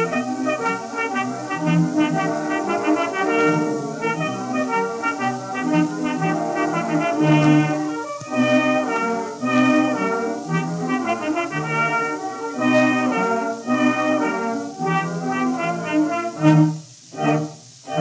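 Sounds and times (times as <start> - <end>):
brass: 0.0 - 18.0
loud accented orchestral chord: 0.0 - 18.0
orchestra playing theatre music: 0.0 - 18.0
record surface hiss: 0.0 - 18.0.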